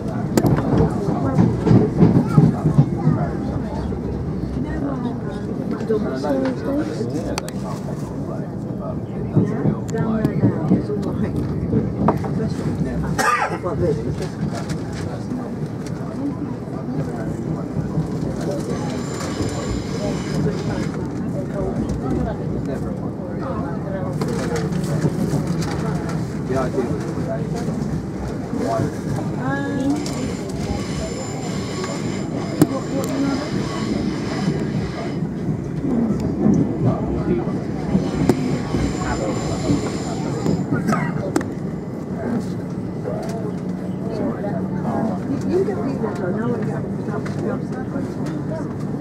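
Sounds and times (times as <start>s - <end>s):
people's voices: 0.0s - 49.0s
train wheels rumbling on track: 0.0s - 49.0s.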